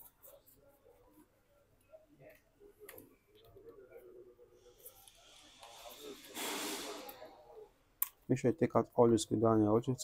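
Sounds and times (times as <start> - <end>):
faint low murmuring: 0.0 - 7.9.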